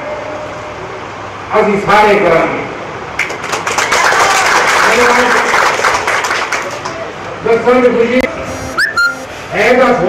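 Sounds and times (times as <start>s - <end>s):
brief whistle: 8.5s - 9.4s.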